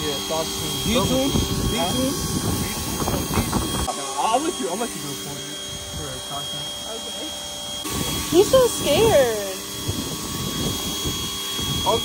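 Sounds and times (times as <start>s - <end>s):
pressure washer whining: 0.0s - 12.0s.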